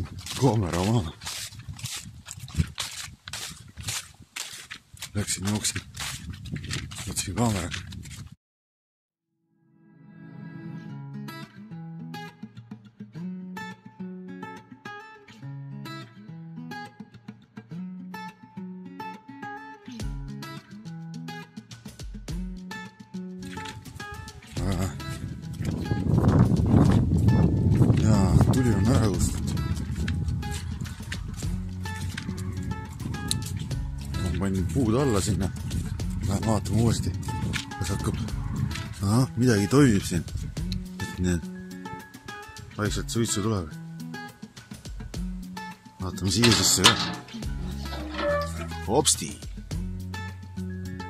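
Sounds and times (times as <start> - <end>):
footfalls through grass: 0.0 - 8.1
footsteps crunching through dry leaves: 0.0 - 8.4, 23.4 - 39.0
handling or wind on microphone: 1.1 - 4.3, 5.0 - 8.4, 23.7 - 34.4, 35.2 - 39.0
background music: 9.7 - 12.5, 28.0 - 51.0.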